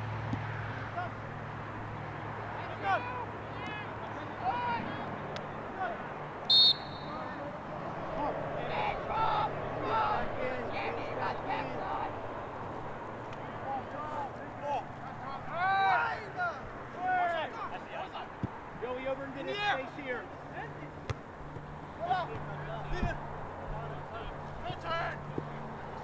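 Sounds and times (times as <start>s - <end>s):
players shouting calls: 0.3s - 26.0s.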